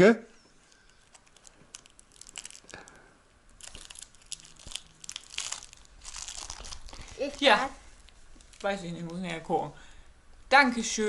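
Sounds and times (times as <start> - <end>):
material crinkling and rustling: 0.5 - 9.5.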